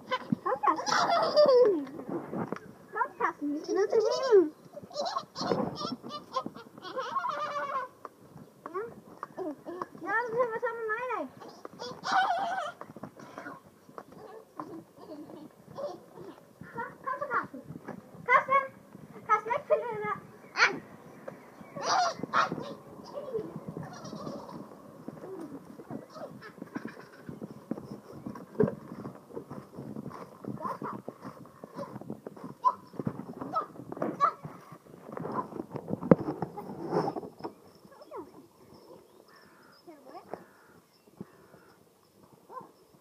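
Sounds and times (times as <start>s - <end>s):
young children squealing and babbling: 0.0s - 2.0s, 3.6s - 8.0s, 14.2s - 17.5s, 21.7s - 27.4s.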